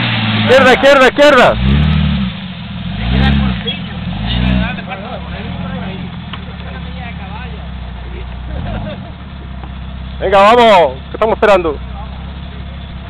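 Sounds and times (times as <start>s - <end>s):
car engine revving then idling: 0.0s - 13.0s.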